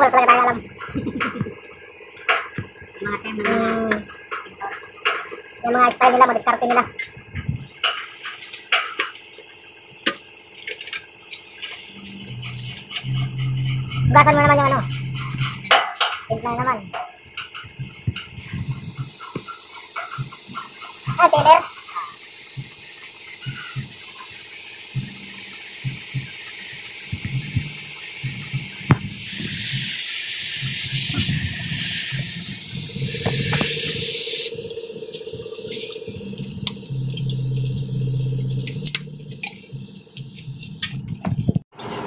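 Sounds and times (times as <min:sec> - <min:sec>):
low hum: 0:11.9 - 0:17.0, 0:27.1 - 0:41.1
paint spray gun hissing: 0:18.4 - 0:39.4.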